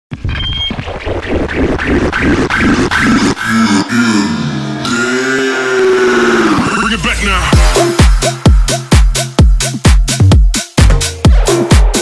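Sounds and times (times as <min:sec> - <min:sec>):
bass-boosted electronic dance music: 0:00.7 - 0:12.0.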